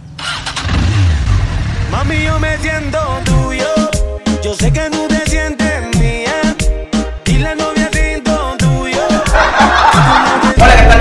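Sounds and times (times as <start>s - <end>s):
motorcycle engine rumbling and revving: 0.0s - 3.6s
motorcycle electric starter cranking: 0.2s - 0.9s.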